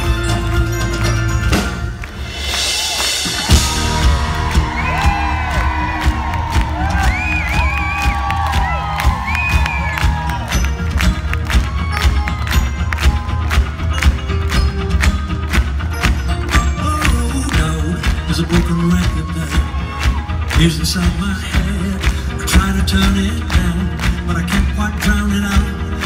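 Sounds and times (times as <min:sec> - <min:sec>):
live rock band playing: 0:00.0 - 0:26.0
crowd cheering and whooping: 0:02.0 - 0:25.9.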